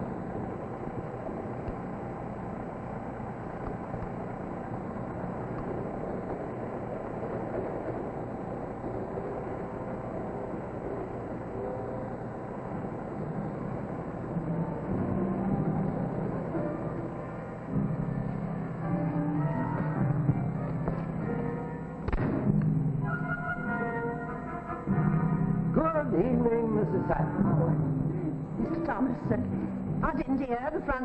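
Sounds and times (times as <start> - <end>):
low music: 0.0 - 31.0
railway carriage rumbling: 0.0 - 31.0.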